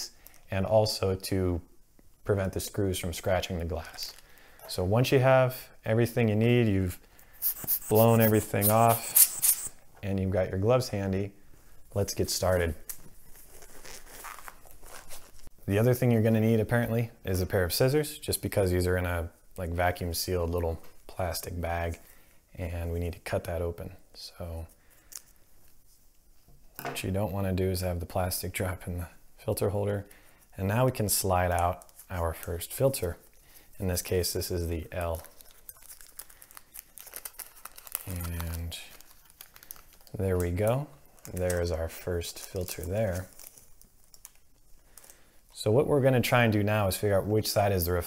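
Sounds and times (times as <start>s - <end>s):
rubber glove rustling: 7.2s - 9.9s, 11.6s - 16.4s, 31.0s - 45.7s
plastic packaging crinkling: 7.4s - 9.8s, 12.8s - 15.5s, 31.4s - 45.4s.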